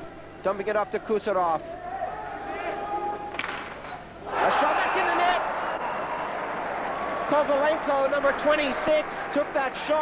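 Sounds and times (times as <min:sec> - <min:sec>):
arena crowd murmur: 0:04.2 - 0:10.0.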